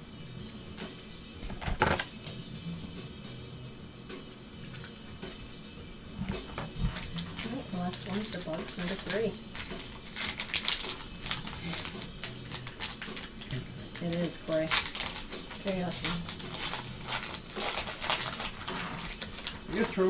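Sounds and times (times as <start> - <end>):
foil wrappers crinkling and tearing: 6.6 - 20.0.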